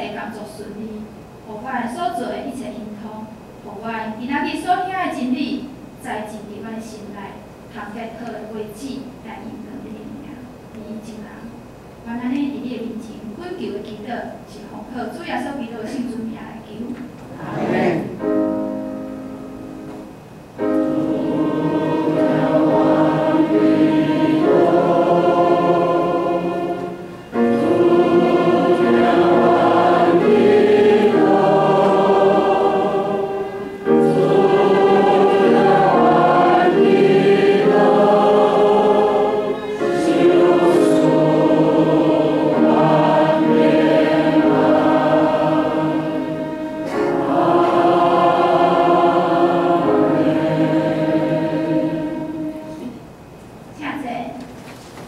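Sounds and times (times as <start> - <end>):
congregation singing a hymn: 17.3 - 19.1, 20.6 - 53.0
piano accompaniment: 17.4 - 53.2.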